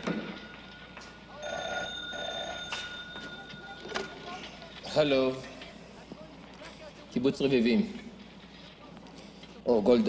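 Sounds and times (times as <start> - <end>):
telephone bell ringing: 0.3 - 4.7.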